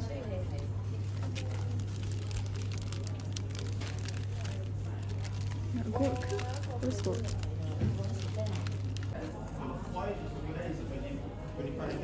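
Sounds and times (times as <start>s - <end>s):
plastic packaging crinkling: 1.0s - 9.2s.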